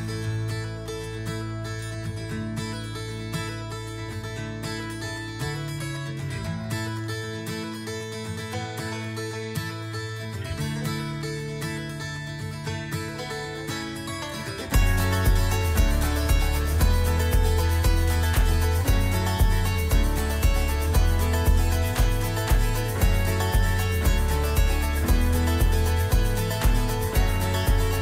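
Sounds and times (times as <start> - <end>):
upbeat acoustic guitar music: 0.0 - 28.0
steady beat: 14.7 - 28.0.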